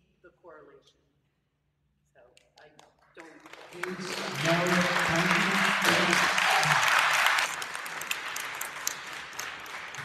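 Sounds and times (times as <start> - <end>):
audience applause: 3.2 - 10.0.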